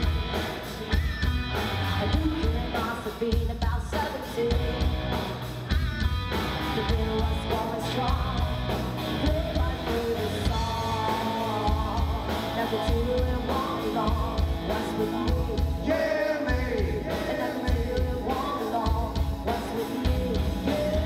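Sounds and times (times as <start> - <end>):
rock band playing: 0.0 - 21.0
woman singing: 2.0 - 4.8, 6.7 - 21.0.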